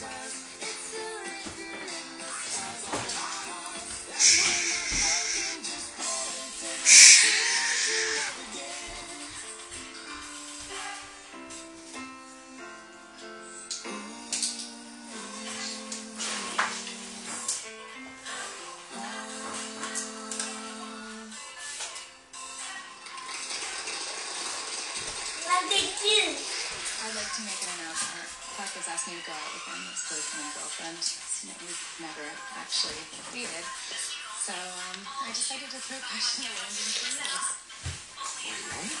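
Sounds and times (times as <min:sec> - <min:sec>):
music from television speaker: 0:00.0 - 0:39.0
sharp hissing burst: 0:04.2 - 0:05.6, 0:06.8 - 0:08.4.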